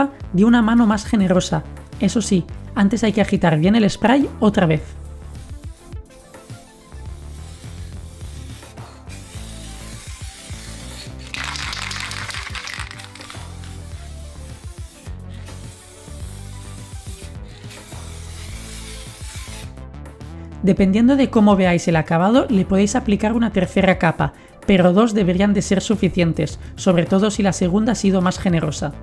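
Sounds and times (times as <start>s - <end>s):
background music: 0.0s - 29.0s
aerosol can spraying: 3.0s - 19.8s.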